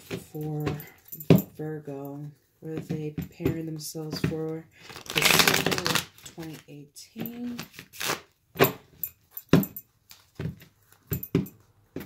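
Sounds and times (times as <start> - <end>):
cards being shuffled: 4.8 - 8.8.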